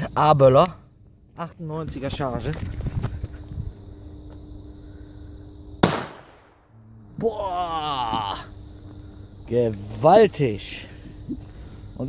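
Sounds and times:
firecracker bang: 5.8s - 6.6s.

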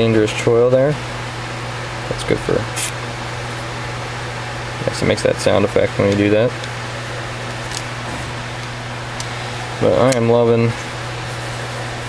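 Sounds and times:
ventilation hum and hiss: 0.0s - 12.0s.

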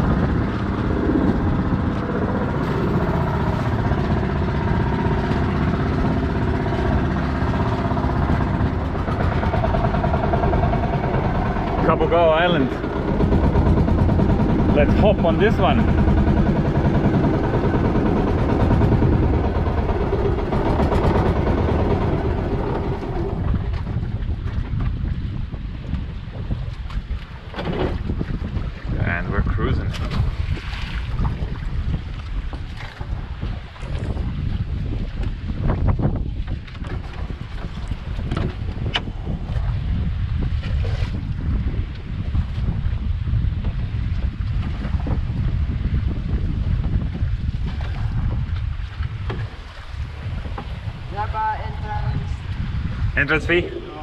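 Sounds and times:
boat engine running: 0.0s - 54.0s
water washing along hull: 0.0s - 54.0s
wind buffeting microphone: 0.0s - 54.0s.

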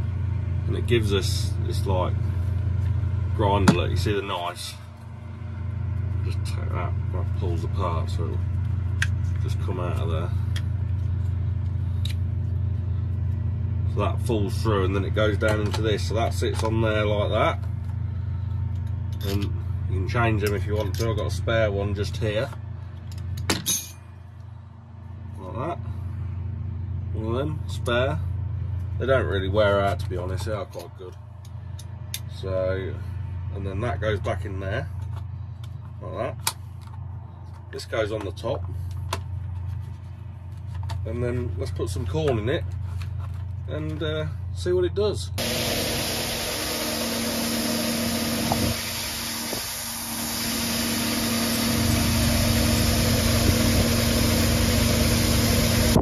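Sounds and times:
farm machine engine humming: 0.0s - 23.4s, 24.2s - 56.0s.

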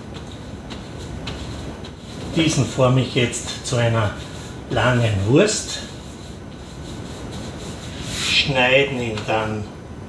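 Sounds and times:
hands rolling dough: 0.0s - 9.4s.

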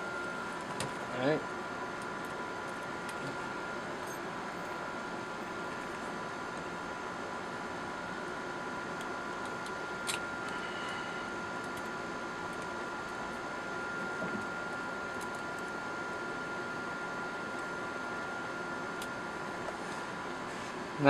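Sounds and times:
thin constant whine: 0.0s - 21.0s.

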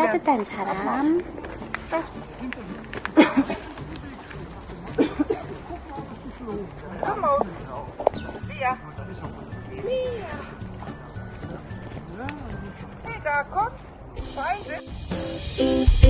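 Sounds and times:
voices talking: 0.0s - 15.8s
background music: 0.0s - 16.0s.

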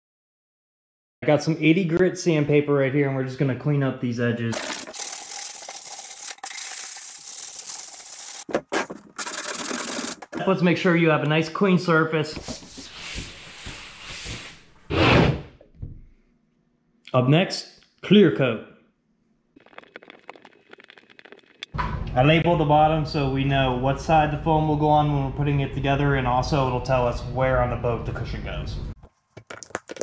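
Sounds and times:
sandpaper scratching on wood: 4.6s - 8.4s.

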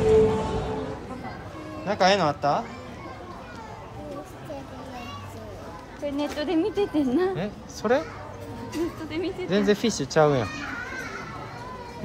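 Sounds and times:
background crowd noise: 0.0s - 12.0s.

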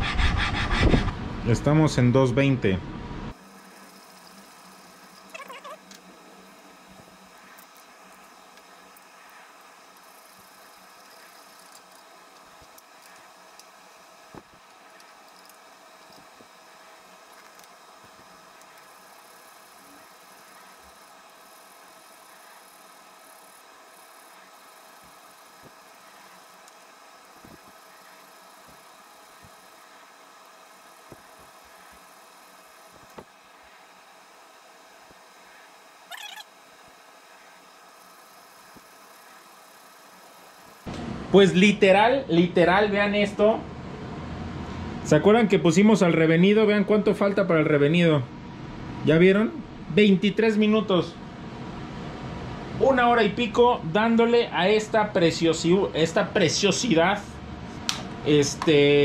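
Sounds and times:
sandpaper rubbing on steel blade: 0.0s - 1.1s
workshop hum: 0.0s - 59.0s.

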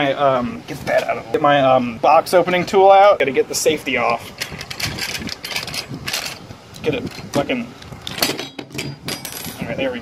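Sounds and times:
tool clicks and metallic rattles: 4.1s - 6.4s, 8.0s - 9.6s.

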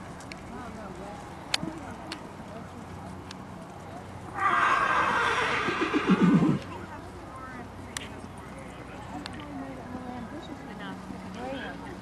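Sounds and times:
horse whinnying: 4.4s - 6.7s.

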